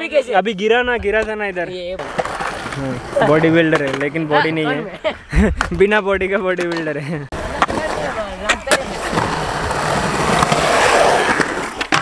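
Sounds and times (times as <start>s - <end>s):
skateboard wheels rolling on concrete: 0.1s - 12.0s
skateboard clacks: 6.5s - 12.0s.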